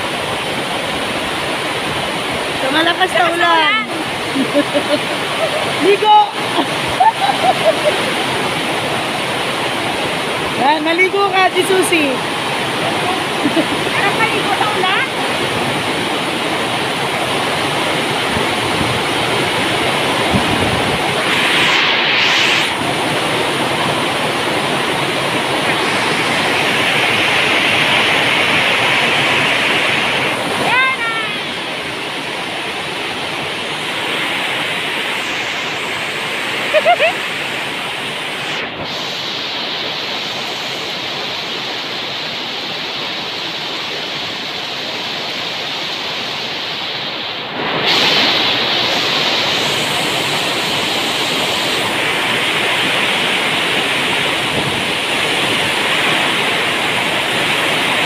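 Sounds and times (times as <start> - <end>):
heavy rain falling: 0.0 - 46.4, 47.4 - 58.0.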